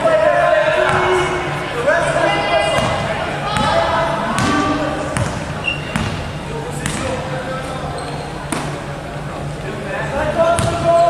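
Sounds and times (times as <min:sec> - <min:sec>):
players shouting: 0:00.0 - 0:06.7
basketball bouncing on hardwood: 0:05.2 - 0:06.2.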